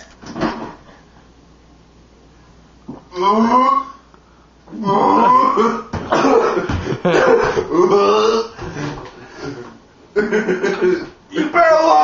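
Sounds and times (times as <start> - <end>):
man coughing hard: 5.1 - 8.2, 10.4 - 11.6.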